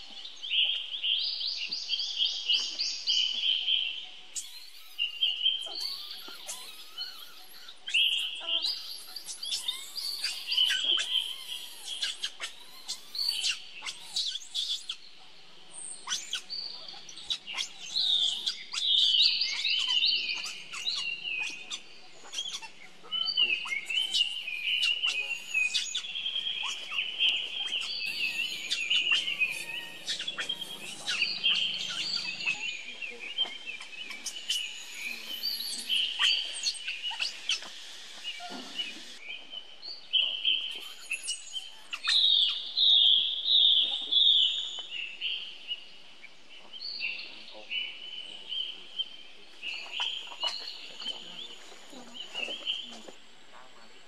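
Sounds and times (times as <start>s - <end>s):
birds chirping and twittering: 0.0s - 54.0s.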